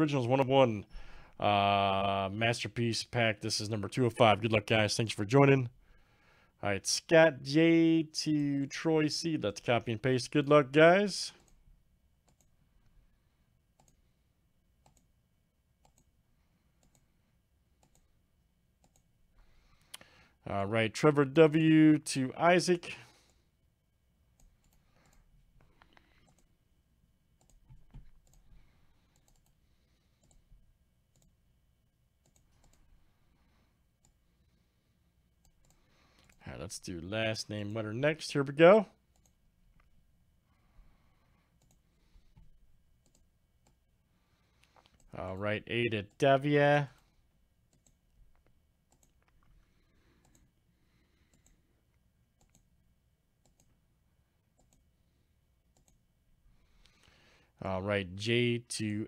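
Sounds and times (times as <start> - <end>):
computer mouse clicks: 12.2 - 12.6, 13.8 - 14.0, 14.8 - 15.1, 15.8 - 16.1, 16.8 - 17.1, 17.8 - 18.1, 18.8 - 19.1, 24.4 - 26.5, 27.4 - 30.5, 31.1 - 31.4, 32.2 - 32.9, 35.4 - 36.4, 39.1 - 39.9, 41.6 - 43.8, 44.5 - 45.1, 47.7 - 50.5, 51.2 - 52.7, 53.4 - 53.8, 54.6 - 54.9, 55.7 - 56.0.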